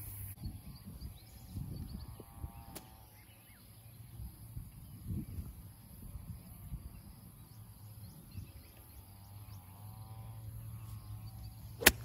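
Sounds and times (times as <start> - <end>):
golf club hitting ball: 11.8 - 12.0.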